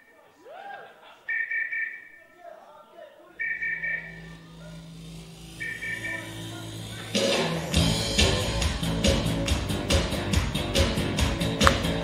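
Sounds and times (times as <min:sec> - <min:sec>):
audience voices: 0:02.4 - 0:09.2
pulsing two-tone synthesizer figure: 0:03.4 - 0:08.6
sustained low synthesizer note: 0:03.4 - 0:09.0.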